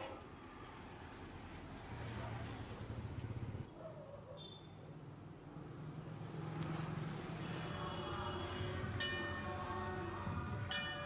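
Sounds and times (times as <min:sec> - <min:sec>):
metal temple bell ringing: 0:09.0 - 0:09.6.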